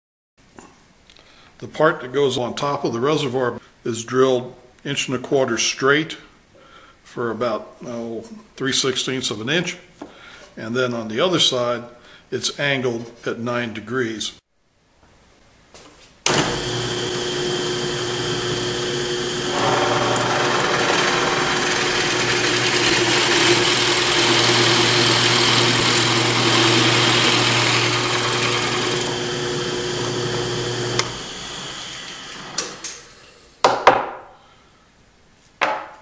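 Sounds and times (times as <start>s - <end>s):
drill bit cutting into wood: 16.3s - 32.8s
drill press motor running: 16.3s - 32.8s.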